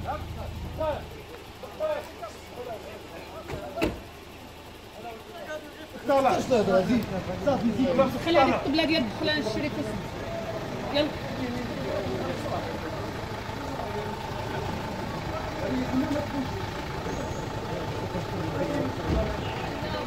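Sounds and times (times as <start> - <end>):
men talking: 0.0 - 20.0
van engine idling: 0.0 - 20.0.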